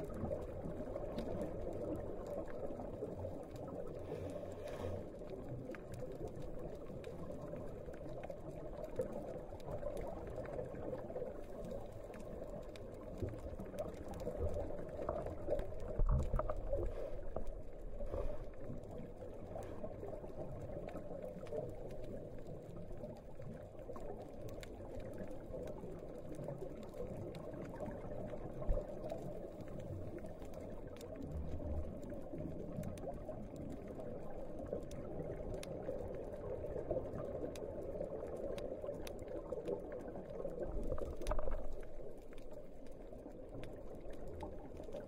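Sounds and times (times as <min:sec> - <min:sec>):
bubbling underwater: 0:05.4 - 0:18.0.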